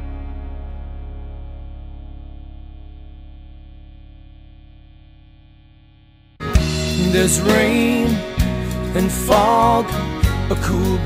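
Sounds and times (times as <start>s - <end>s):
wavering guitar chord: 0.0s - 11.0s.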